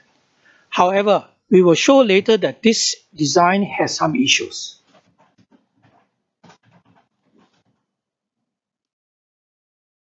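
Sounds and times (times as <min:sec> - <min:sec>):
faint breaths: 0:00.0 - 0:00.8.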